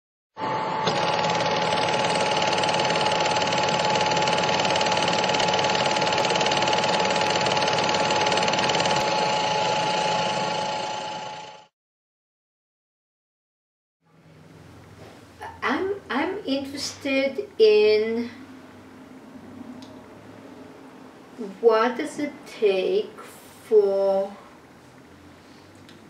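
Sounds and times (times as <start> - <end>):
high hum: 0.4 - 11.7
machine clattering: 0.9 - 11.1.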